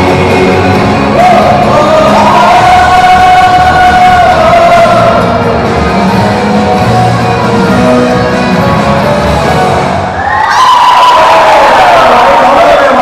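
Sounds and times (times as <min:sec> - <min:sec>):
group singing pop-rock song: 0:00.0 - 0:05.7
loud band playing: 0:00.0 - 0:11.0.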